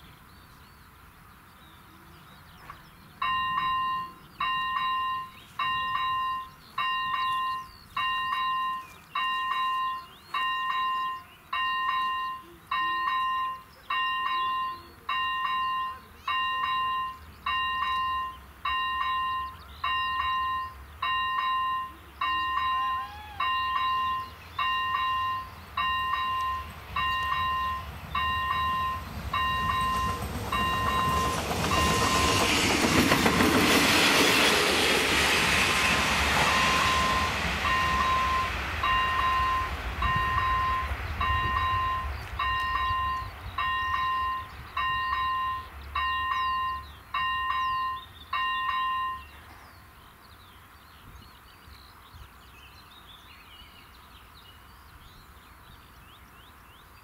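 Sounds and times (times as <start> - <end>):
train rumble: 2.6 - 52.4
level crossing bell ringing: 3.2 - 32.5, 36.4 - 49.4.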